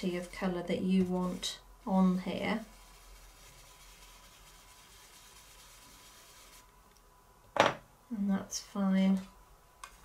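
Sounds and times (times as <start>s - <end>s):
stencil brush rubbing on card: 0.0s - 6.7s.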